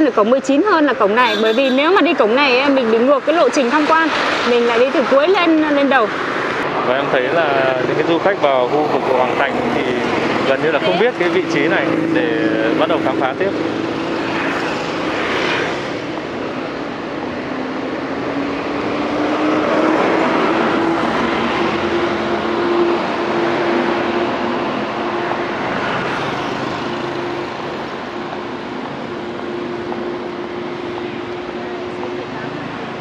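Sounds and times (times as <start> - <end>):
steady engine hum: 0.0 - 33.0
motor scooters passing: 0.2 - 33.0.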